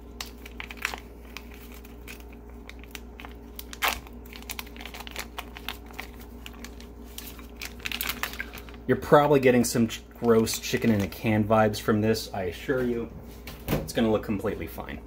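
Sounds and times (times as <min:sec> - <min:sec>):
plastic packaging crinkling: 0:00.0 - 0:11.5.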